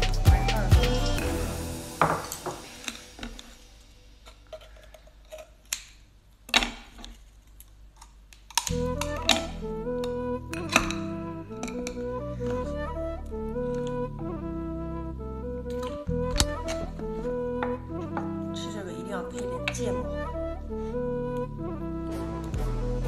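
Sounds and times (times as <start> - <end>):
light woodwind background music: 0.0 - 4.4, 8.6 - 23.0.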